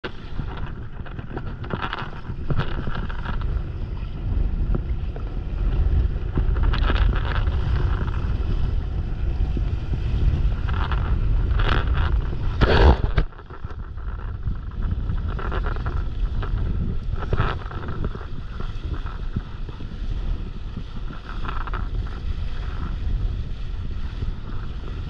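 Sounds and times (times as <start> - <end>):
water rushing and splashing: 0.0 - 25.0
wind buffeting microphone: 0.0 - 25.0.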